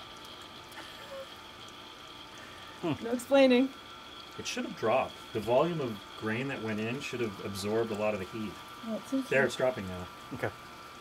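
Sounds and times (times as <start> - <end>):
small pump whining: 0.0 - 11.0.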